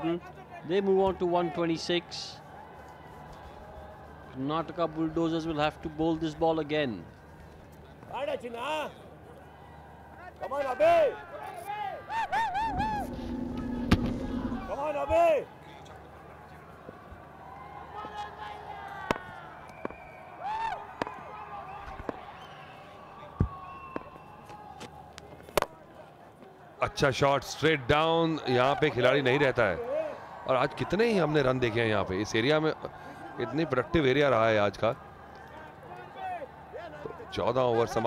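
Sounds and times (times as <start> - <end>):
voices shouting and whooping: 9.4 - 15.4, 27.6 - 34.0.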